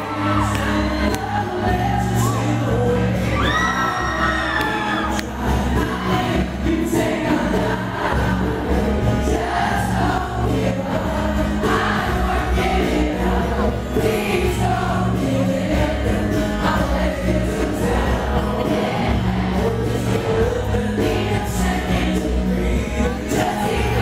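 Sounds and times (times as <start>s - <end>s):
acoustic guitar: 0.0s - 24.0s
bass and drums: 0.0s - 24.0s
man singing into a microphone: 0.0s - 24.0s.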